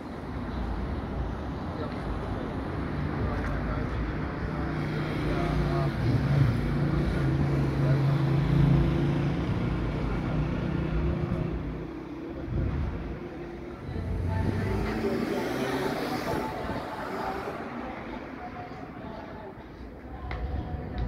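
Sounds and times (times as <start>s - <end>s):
indistinct voices: 1.6s - 21.0s.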